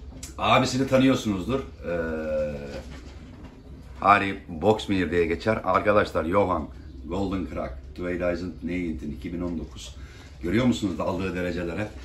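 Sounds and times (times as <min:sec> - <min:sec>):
man saying eh: 0:00.4 - 0:02.8
pigeons cooing: 0:00.7 - 0:12.0.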